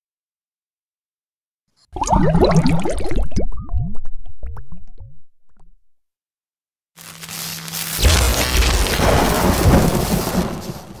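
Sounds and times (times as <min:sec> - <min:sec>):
dense hiss: 0:07.0 - 0:11.0.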